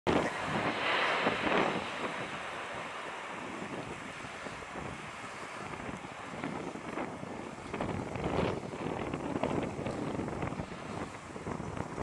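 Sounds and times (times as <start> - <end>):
jet airliner engine hiss: 0.1 - 12.0
wind buffeting microphone: 0.1 - 12.0.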